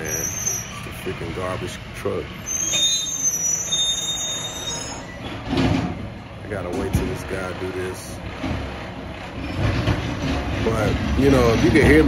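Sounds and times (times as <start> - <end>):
garbage truck engine rumbling: 0.0 - 12.0.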